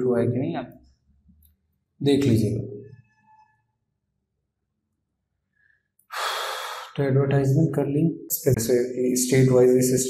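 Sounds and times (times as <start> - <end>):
man's sharp in-breath: 5.6 - 7.0.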